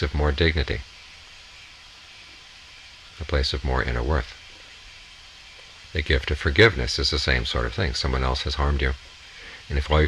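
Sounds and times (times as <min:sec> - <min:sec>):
low hum: 0:00.0 - 0:10.0
steady hiss: 0:00.0 - 0:10.0.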